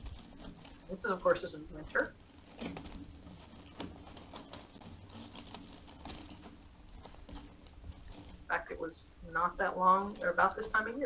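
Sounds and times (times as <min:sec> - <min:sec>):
faint clicking and crackling: 0:00.0 - 0:11.0.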